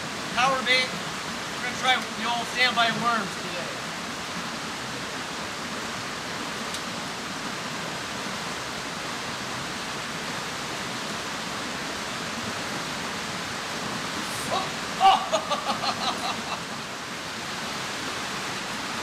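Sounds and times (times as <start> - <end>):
stream rushing over rocks: 0.0 - 19.0.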